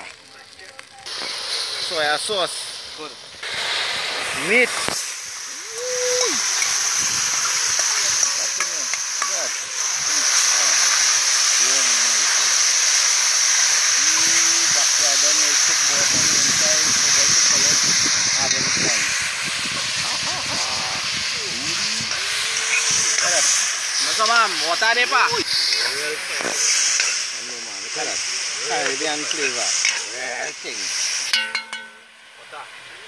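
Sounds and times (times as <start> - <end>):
meat sizzling in hot oil: 0.0 - 33.0.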